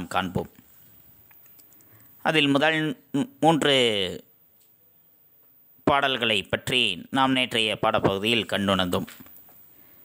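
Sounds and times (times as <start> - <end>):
man narrating: 0.0 - 0.6, 2.2 - 4.3, 5.8 - 9.2
faint clicks: 1.2 - 2.0.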